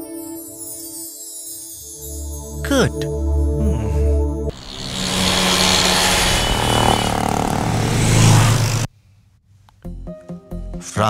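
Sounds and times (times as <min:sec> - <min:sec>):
rushing whoosh with low rumble: 0:04.6 - 0:08.9.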